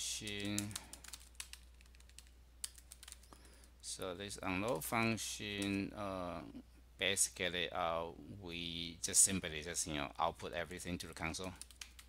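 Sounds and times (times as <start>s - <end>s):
light keyboard typing: 0.2s - 3.6s, 11.3s - 12.0s.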